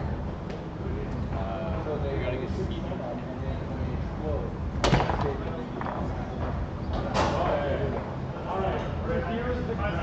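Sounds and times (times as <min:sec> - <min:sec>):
foosball ball struck: 0:04.8 - 0:06.4.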